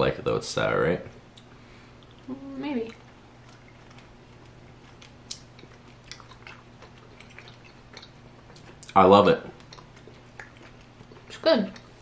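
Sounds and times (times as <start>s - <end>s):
chewing candy: 2.0s - 12.0s.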